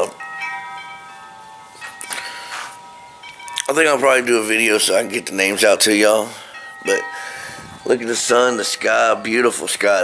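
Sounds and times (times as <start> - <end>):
wind chimes ringing: 0.0 - 10.0.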